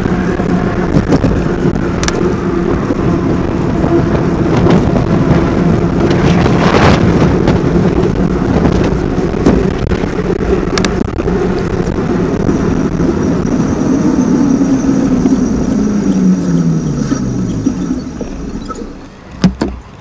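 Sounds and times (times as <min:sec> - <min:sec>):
wind rush: 0:00.0 - 0:19.1
tire road noise: 0:00.0 - 0:20.0
motor whine falling in pitch: 0:12.5 - 0:19.2.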